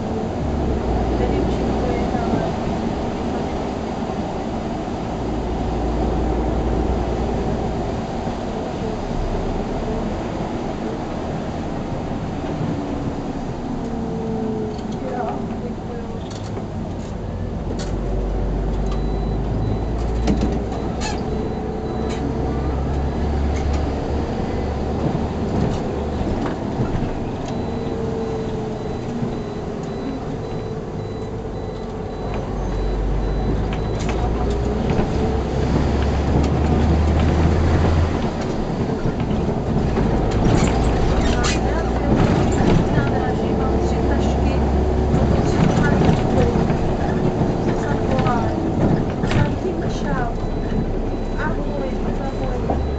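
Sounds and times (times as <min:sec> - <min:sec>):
bus engine under load: 0:00.0 - 0:52.9.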